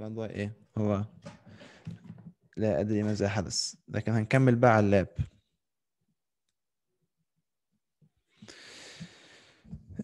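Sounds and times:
person breathing into microphone: 0:08.3 - 0:10.0.

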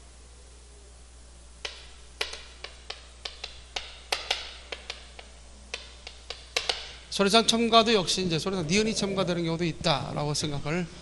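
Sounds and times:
chalk tapping on chalkboard: 0:01.6 - 0:07.0.

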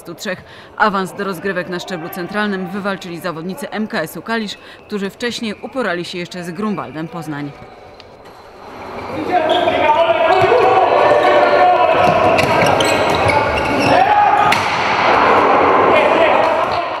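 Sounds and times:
crowd shouting and cheering: 0:08.4 - 0:17.0.

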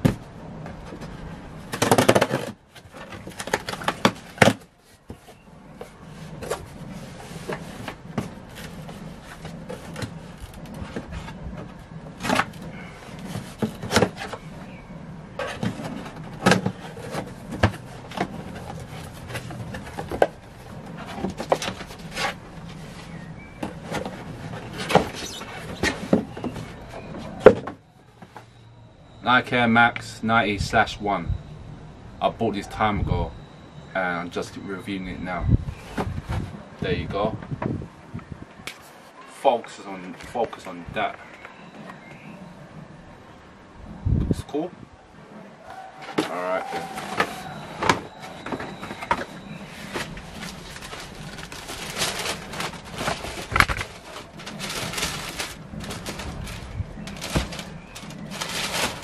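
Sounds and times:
cardboard scraping and rustling: 0:00.0 - 0:28.6, 0:35.3 - 0:37.7, 0:45.7 - 0:59.0.

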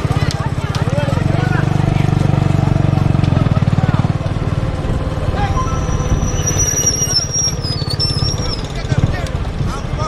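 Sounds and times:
motorcycle engine running: 0:00.0 - 0:06.4.

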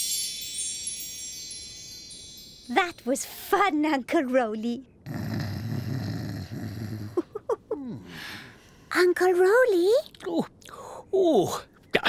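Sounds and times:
low rough snoring: 0:05.0 - 0:07.2.

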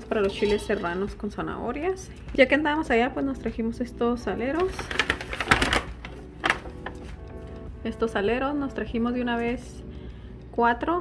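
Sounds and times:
plastic shakers tapping in a pot: 0:04.5 - 0:06.9.

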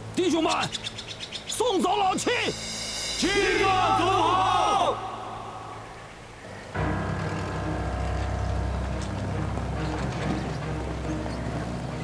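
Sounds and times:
music: 0:01.8 - 0:05.4, 0:06.4 - 0:12.0
truck engine running: 0:06.8 - 0:12.0.

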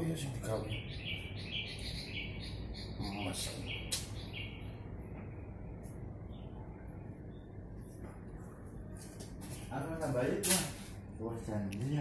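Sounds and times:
bird chirping: 0:00.0 - 0:07.9.

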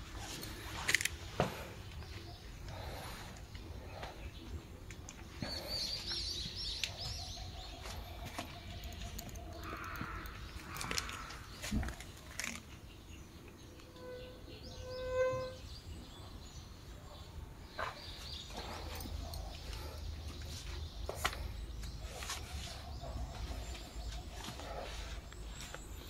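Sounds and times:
birds chirping: 0:00.0 - 0:26.0.

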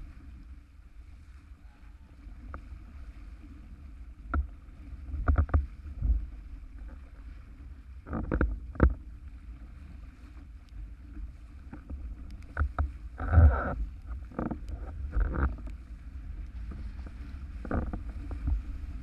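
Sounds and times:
board slapping through water: 0:00.0 - 0:19.0
wind on microphone: 0:00.0 - 0:19.0.

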